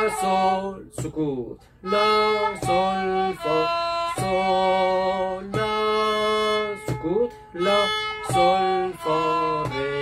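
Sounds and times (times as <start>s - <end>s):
bowed fiddle long notes: 0.0s - 0.8s, 1.8s - 10.0s.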